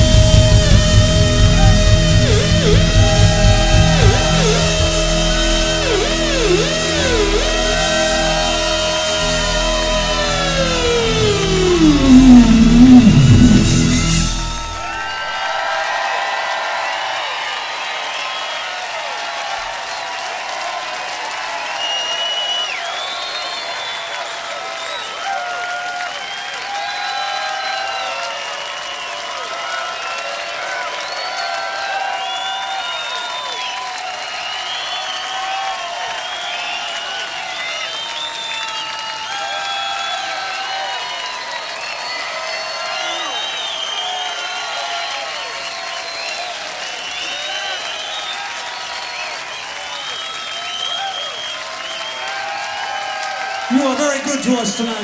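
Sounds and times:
band holding a chord: 0.0s - 15.4s
electric guitar note diving: 0.0s - 15.4s
crowd cheering and whistling: 0.0s - 55.0s.

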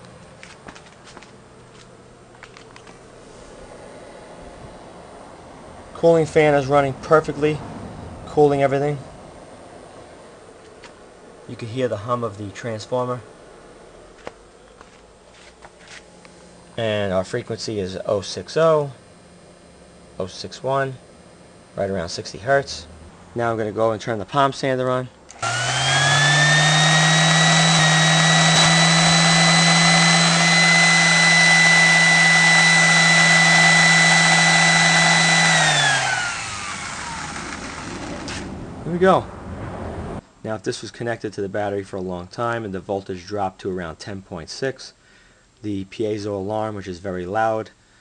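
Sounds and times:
small cooling fan running: 0.0s - 39.2s
electric sander motor whine: 25.3s - 39.5s
transformer buzzing: 25.3s - 40.2s.

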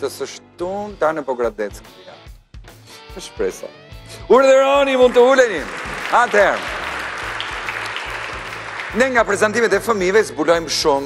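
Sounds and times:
background music: 0.0s - 11.0s
audience applauding: 4.8s - 11.0s.

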